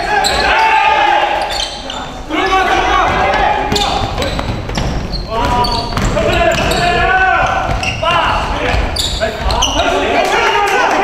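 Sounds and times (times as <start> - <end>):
players calling out: 0.0 - 11.0.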